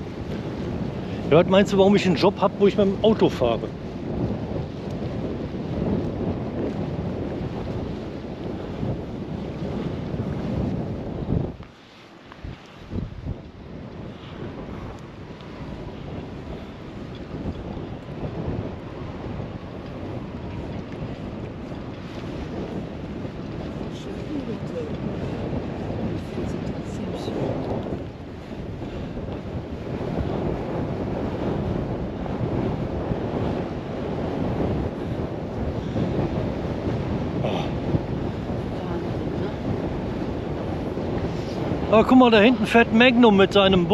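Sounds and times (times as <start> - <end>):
wind buffeting microphone: 0.0 - 43.9.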